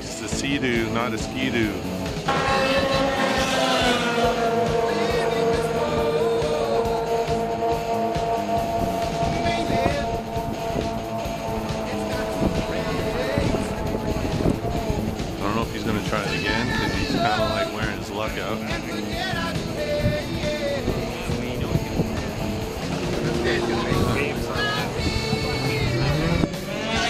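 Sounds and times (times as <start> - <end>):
snowmobile engine at high revs: 0.0 - 27.0.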